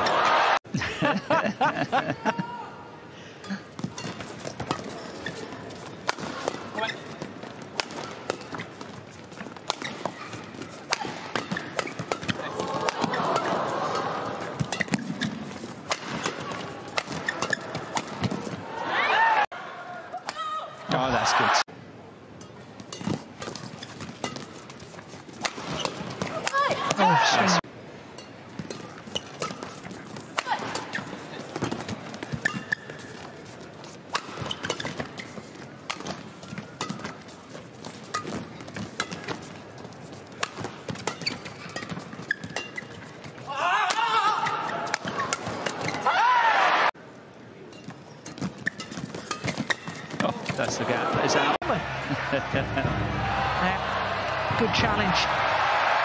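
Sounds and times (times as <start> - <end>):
crowd cheering and shouting: 0.0 - 0.6, 12.4 - 14.4, 18.6 - 20.2, 20.9 - 21.7, 26.7 - 27.6, 46.0 - 47.0, 50.8 - 56.0
rackets striking shuttlecock: 14.6 - 18.4, 25.4 - 27.0.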